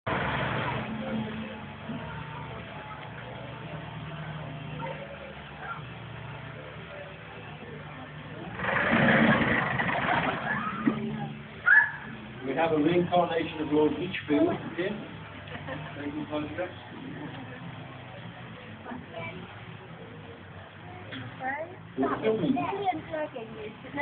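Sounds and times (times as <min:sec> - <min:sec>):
boat motor humming: 0:00.0 - 0:24.0
passengers' voices: 0:13.9 - 0:24.0.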